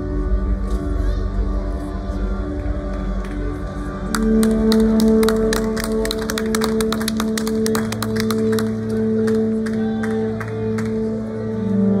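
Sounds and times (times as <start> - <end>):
live concert music: 3.6 - 12.0.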